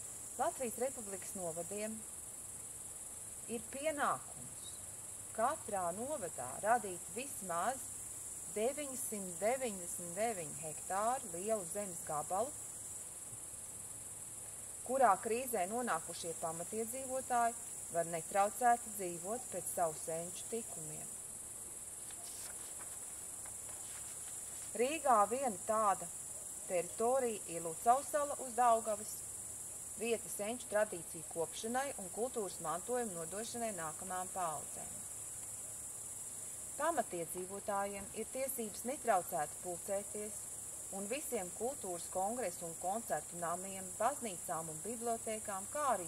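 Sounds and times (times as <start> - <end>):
crickets chirring: 0.0 - 46.0.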